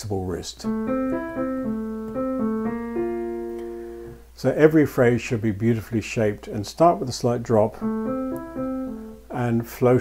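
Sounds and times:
piano chords: 0.6 - 4.2, 7.6 - 9.4.

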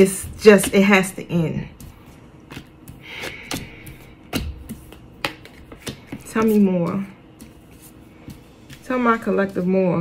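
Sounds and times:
cards tapping on tabletop: 3.5 - 6.6.

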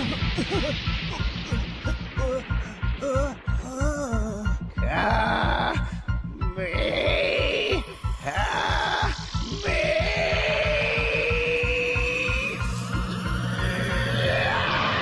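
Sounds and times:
dramatic score with pulsing beat: 0.0 - 15.0.

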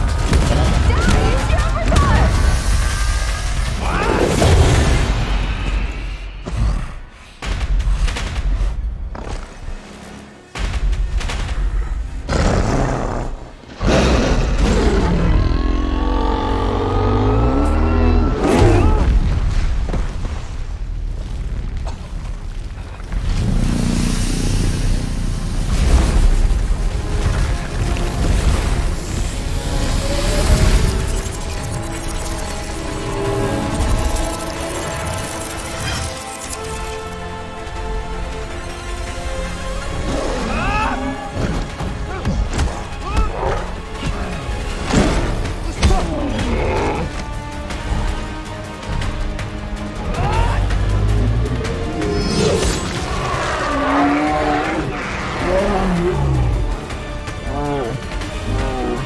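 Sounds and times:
dramatic orchestral score: 0.0 - 59.0
low growling: 12.3 - 19.0
deep creature roar: 12.3 - 19.1, 46.0 - 47.2, 52.0 - 56.8, 57.4 - 59.0.

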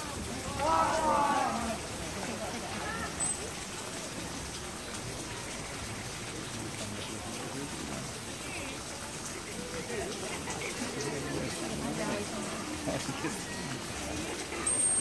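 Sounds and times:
faint voices: 0.0 - 15.0
water: 0.0 - 15.0
wind: 0.0 - 15.0.

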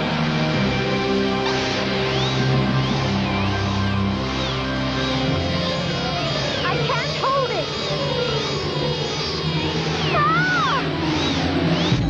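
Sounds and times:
cartoon music: 10.0 - 11.0.

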